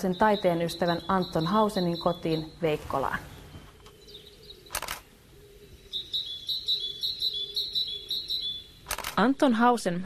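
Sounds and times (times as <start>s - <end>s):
small bird chirping: 0.0s - 9.2s.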